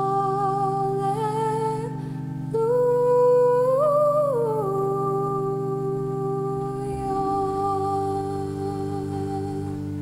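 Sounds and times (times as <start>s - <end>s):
pipe organ chord: 0.0s - 10.0s
woman singing wordless melody: 0.0s - 10.0s.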